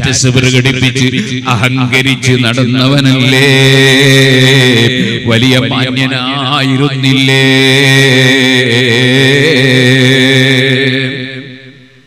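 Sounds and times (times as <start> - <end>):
man chanting a long note: 0.0 - 11.8.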